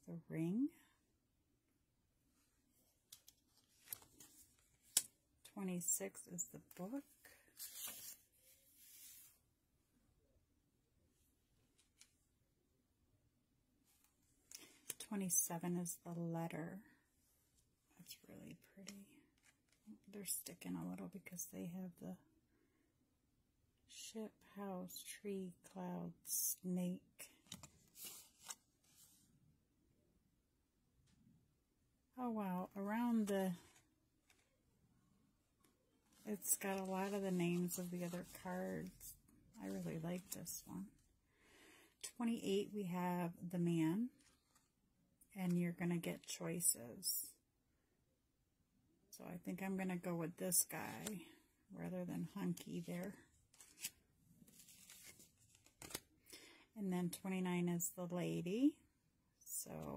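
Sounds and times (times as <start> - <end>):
cards sliding with swish and snap: 7.6 - 9.3, 27.5 - 29.1, 53.5 - 56.0.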